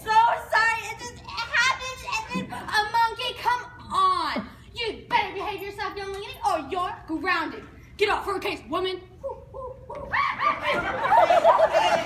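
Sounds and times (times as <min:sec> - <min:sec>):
girl's high-pitched vocal outbursts: 0:00.0 - 0:05.8.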